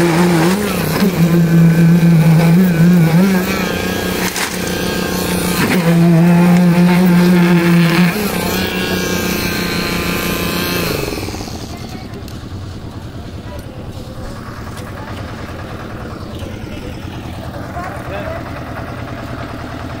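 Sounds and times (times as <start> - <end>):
construction machinery engine running: 0.0 - 20.0.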